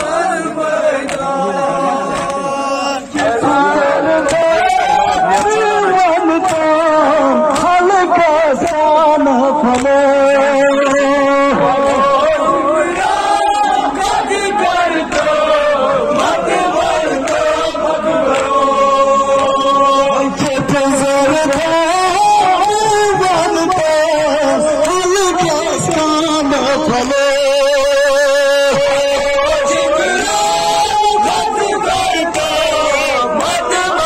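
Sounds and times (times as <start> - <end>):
men chanting a lament in unison: 0.0 - 34.0.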